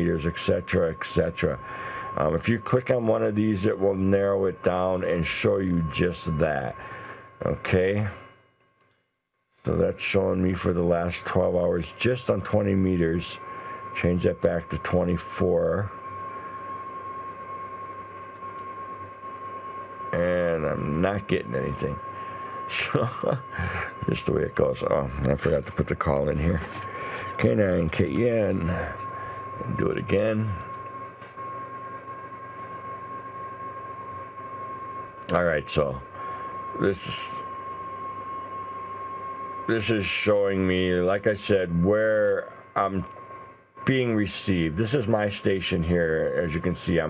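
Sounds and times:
steady whistle-like tone: 0.0s - 8.3s, 9.8s - 47.0s
background hiss and hum: 0.0s - 47.0s
high-pitched tone: 20.1s - 30.9s.

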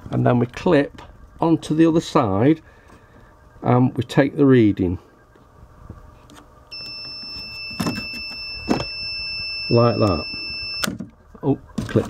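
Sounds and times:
high-pitched electronic beep: 6.7s - 10.9s.

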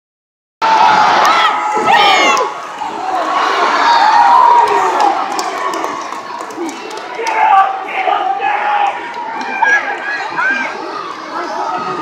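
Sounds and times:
people yelling close by: 0.6s - 5.7s, 6.7s - 12.0s
arena crowd cheering: 0.6s - 12.0s.

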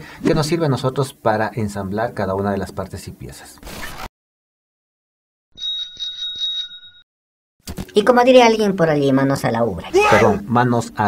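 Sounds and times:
bicycle bell trill: 5.6s - 7.0s.

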